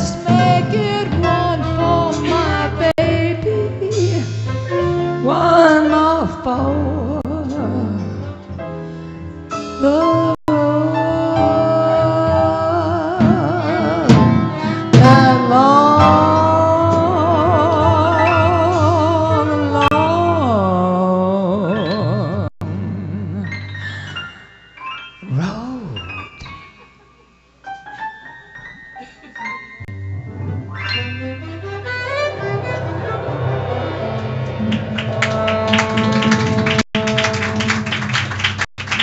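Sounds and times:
woman singing into microphone: 0.0 - 4.3, 5.2 - 8.1, 9.8 - 22.4
low band accompaniment: 31.4 - 38.2
sharp hits: 31.8 - 36.8.

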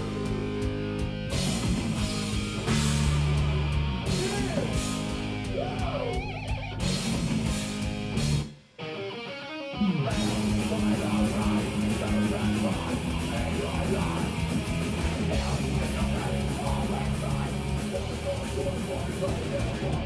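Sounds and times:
heavy rock band playing: 0.0 - 20.0
guitar note bends: 2.0 - 7.1, 8.2 - 10.6.

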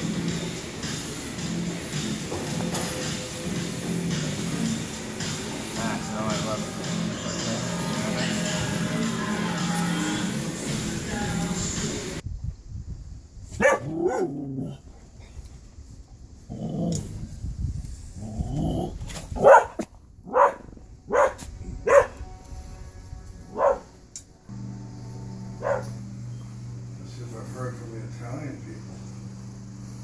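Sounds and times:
dog barking: 13.6 - 14.4, 19.4 - 22.2, 23.5 - 23.9, 25.6 - 26.0.

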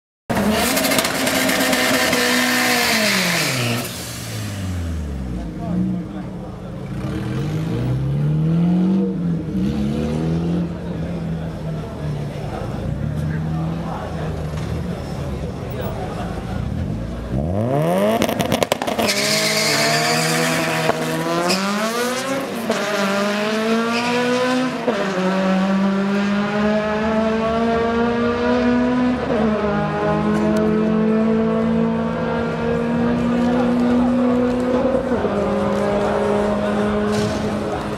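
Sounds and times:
car engine at high revs: 0.3 - 37.9
tyres squealing: 18.8 - 22.4.

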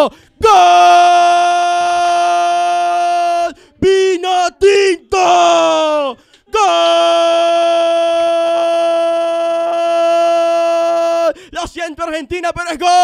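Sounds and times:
commentator shouting goal: 0.0 - 13.0.

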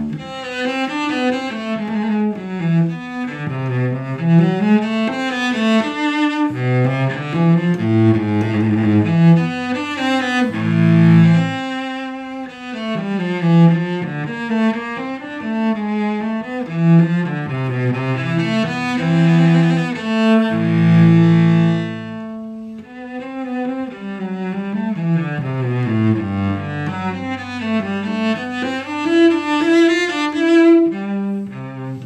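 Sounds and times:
bowed cello melody: 0.0 - 32.0.

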